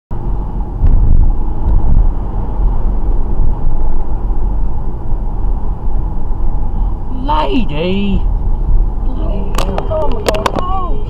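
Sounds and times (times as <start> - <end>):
car engine and tyre rumble: 0.1 - 11.0.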